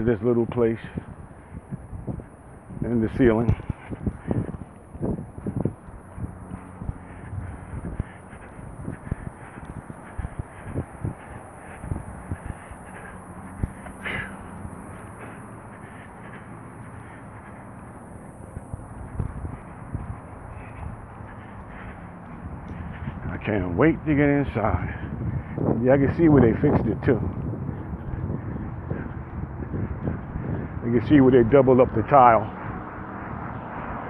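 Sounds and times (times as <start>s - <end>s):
steady background noise: 0.0s - 34.0s.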